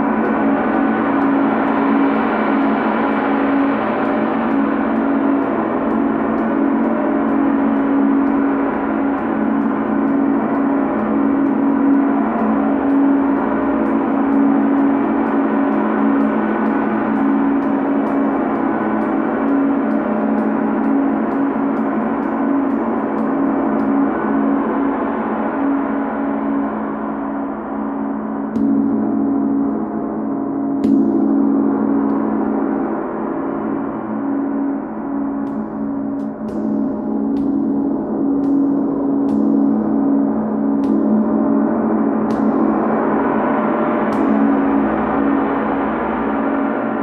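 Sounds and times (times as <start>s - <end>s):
gong played with felt mallet: 0.0s - 47.0s.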